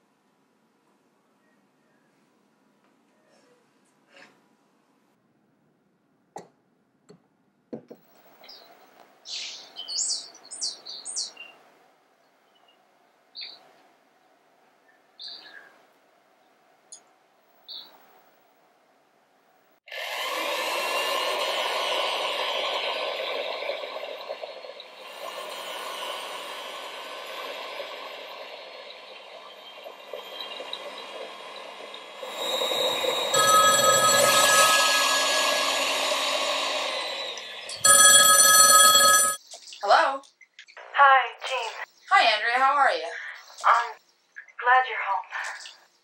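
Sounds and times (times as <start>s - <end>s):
telephone ringing: 32.2s - 39.4s.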